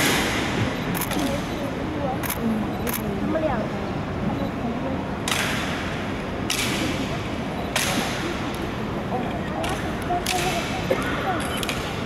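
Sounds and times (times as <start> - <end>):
murmur of onlookers: 0.0 - 12.0.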